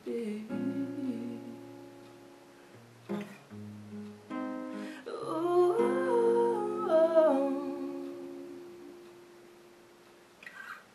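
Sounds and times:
acoustic guitar chord ringing: 0:00.1 - 0:10.2.

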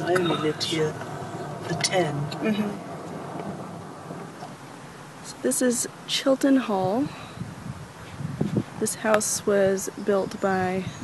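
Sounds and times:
car cabin rumble: 0:00.0 - 0:07.1.

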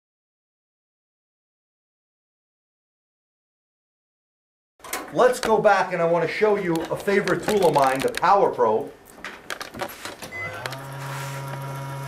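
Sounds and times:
low electrical hum: 0:09.8 - 0:12.0.

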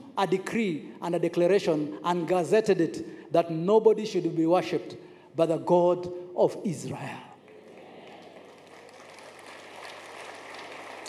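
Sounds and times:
large hall background noise: 0:00.0 - 0:11.0.

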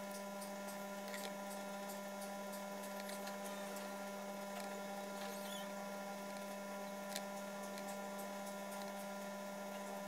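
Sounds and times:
electrical hum: 0:00.0 - 0:10.0.

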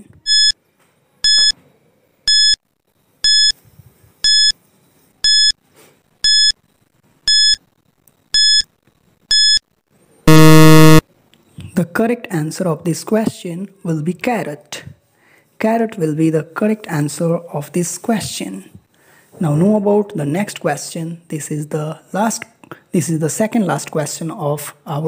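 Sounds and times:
harsh low buzzer: 0:10.3 - 0:11.0
short high beeps: 0:10.3 - 0:11.0.

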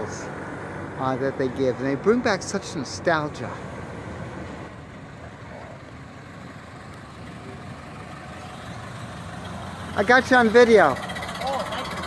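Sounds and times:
car engine driving slowly past: 0:00.0 - 0:12.0.

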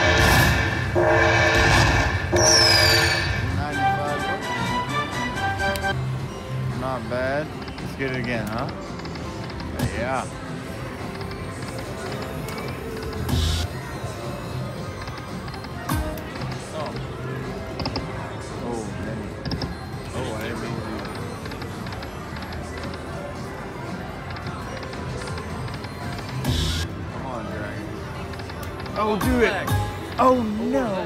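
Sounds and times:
slot machine reel sounds: 0:00.0 - 0:05.9, 0:19.6 - 0:26.9
slot machine game music: 0:00.0 - 0:31.0
casino background chatter: 0:02.6 - 0:31.0.

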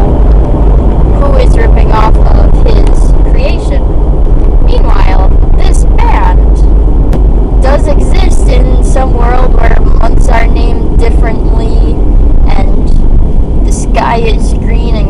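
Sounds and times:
car interior rumble: 0:00.0 - 0:15.0
person talking: 0:01.2 - 0:03.8, 0:04.7 - 0:06.6, 0:07.6 - 0:12.9, 0:13.7 - 0:15.0.

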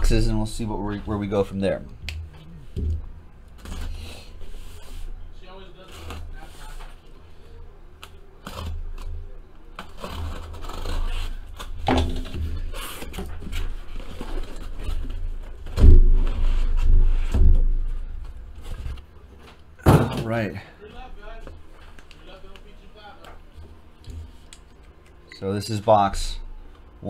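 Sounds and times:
knife cutting cardboard: 0:09.8 - 0:11.7
cardboard rustling and scraping: 0:09.8 - 0:19.1.

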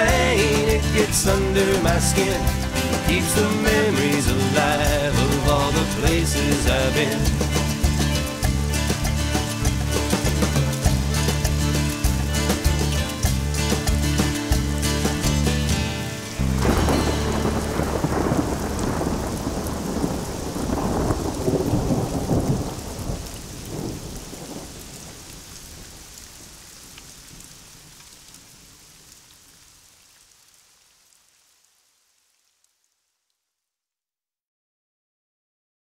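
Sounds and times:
song ending: 0:00.0 - 0:19.4
rain falling: 0:00.0 - 0:33.5
thunder rumbling: 0:15.0 - 0:26.5.

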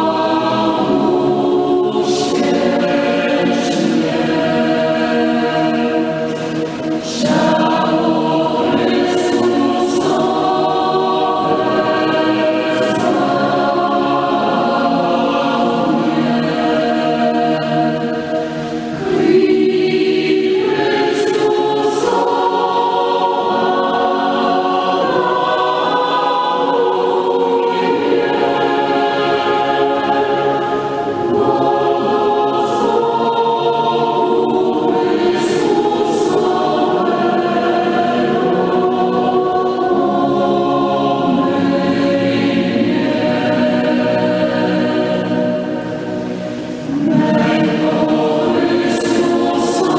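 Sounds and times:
choir singing a hymn: 0:00.0 - 0:49.9.

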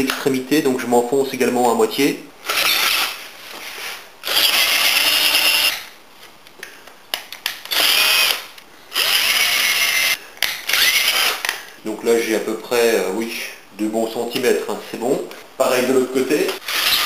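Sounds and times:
cordless drill boring into wood: 0:02.4 - 0:03.2, 0:04.2 - 0:05.9, 0:07.7 - 0:11.4, 0:16.6 - 0:17.0.

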